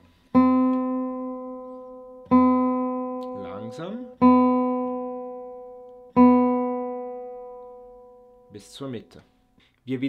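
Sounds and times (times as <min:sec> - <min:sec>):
guitar string plucked and ringing: 0:00.3 - 0:08.8.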